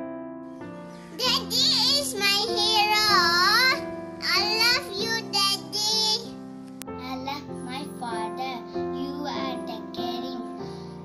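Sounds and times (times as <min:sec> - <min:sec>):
instrumental accompaniment: 0:00.2 - 0:11.0
boy singing: 0:01.2 - 0:06.3, 0:07.0 - 0:10.7.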